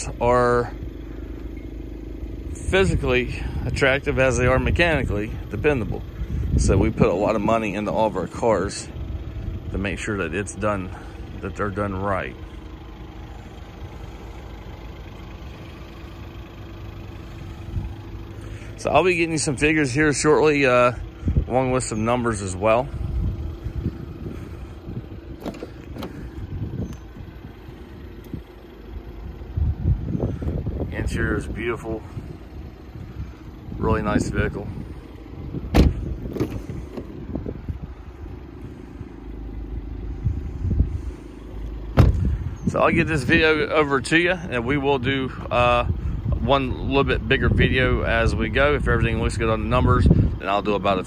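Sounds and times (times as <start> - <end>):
low outdoor rumble: 0.0 - 51.0
low hum: 0.1 - 44.6
car door shutting: 25.3 - 27.0, 35.6 - 37.3, 41.9 - 42.4
brief low thump: 35.6 - 37.1, 42.0 - 42.4.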